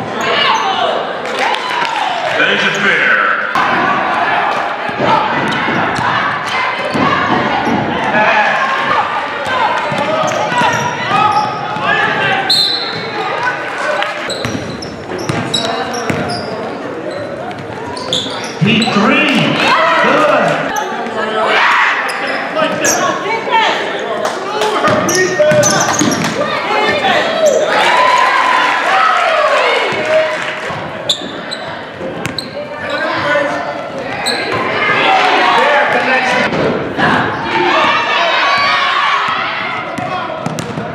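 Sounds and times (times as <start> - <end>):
murmur of voices: 0.0 - 40.9
basketball bouncing: 4.8 - 8.0, 14.4 - 16.4, 38.6 - 40.9
sneaker squeaks: 9.4 - 11.8, 12.4 - 13.4, 14.2 - 19.7, 20.7 - 21.1, 22.0 - 23.2, 24.9 - 27.7, 31.0 - 34.8.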